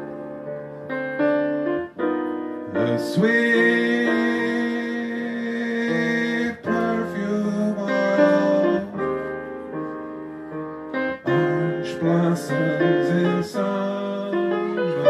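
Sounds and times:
grand piano accompaniment: 0.0 - 15.0
man singing scat: 2.8 - 9.0, 11.2 - 15.0.

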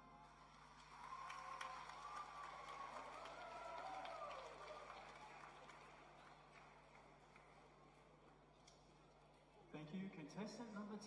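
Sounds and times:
faint audience applause: 0.0 - 8.5.

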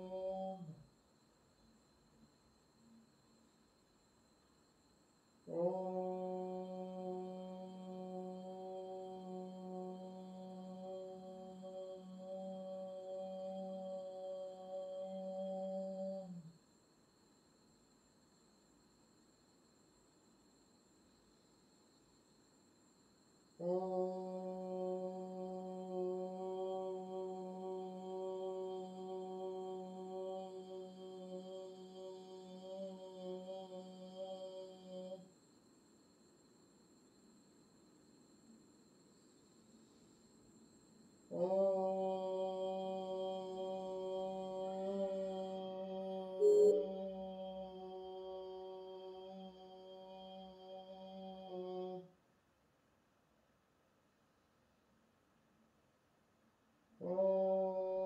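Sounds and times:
low meditation drone: 0.0 - 0.8, 5.4 - 16.6, 23.6 - 35.3, 41.2 - 52.1, 57.0 - 58.0
person chanting a long note: 0.0 - 0.8, 5.5 - 16.6, 23.6 - 35.3, 41.3 - 52.1, 57.0 - 58.0.

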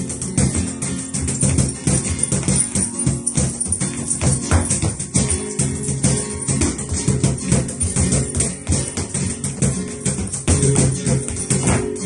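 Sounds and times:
flamenco guitar playing: 0.0 - 12.0
sharp percussive strikes: 0.0 - 12.0.

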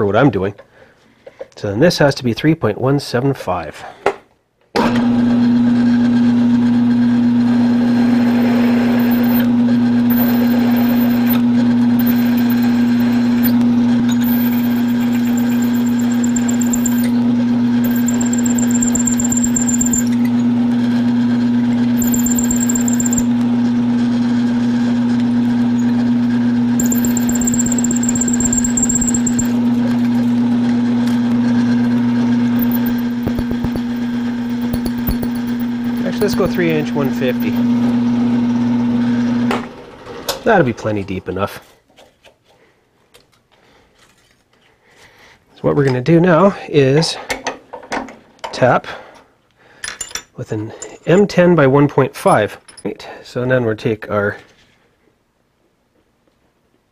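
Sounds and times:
mill-drill motor hum: 6.9 - 39.4
drill bit squealing: 8.8 - 20.5, 21.9 - 23.4, 26.8 - 30.3, 32.4 - 37.7.

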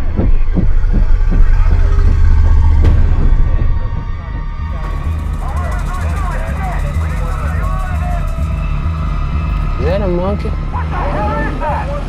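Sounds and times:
helicopter rotor beating: 0.0 - 12.0
voices: 3.9 - 12.0.

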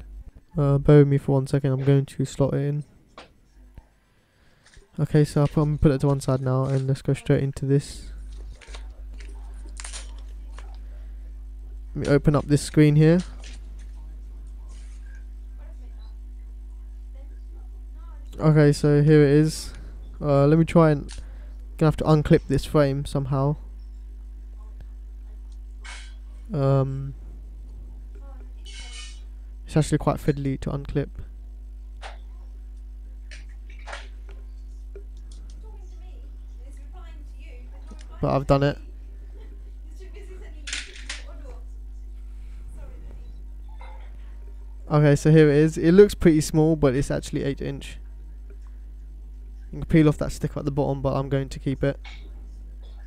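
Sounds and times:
low electrical hum: 0.0 - 53.0.

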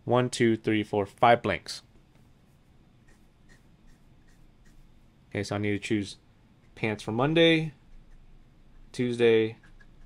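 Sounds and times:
pen strokes on paper: 2.4 - 5.0.

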